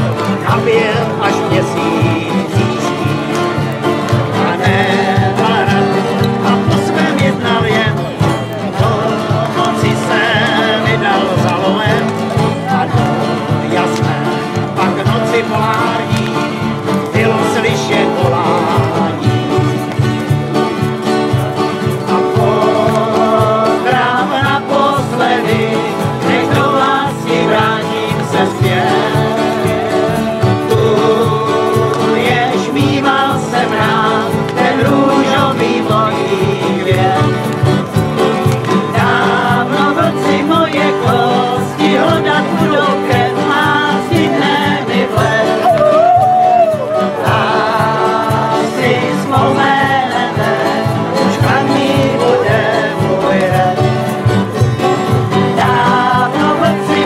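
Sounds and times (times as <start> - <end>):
acoustic guitars strumming: 0.0 - 57.0
man singing country song: 0.0 - 57.0.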